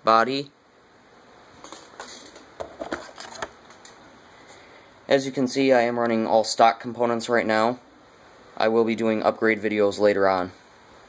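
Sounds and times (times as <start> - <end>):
low hiss: 0.0 - 11.0
handling clicks and rustles: 1.6 - 4.1.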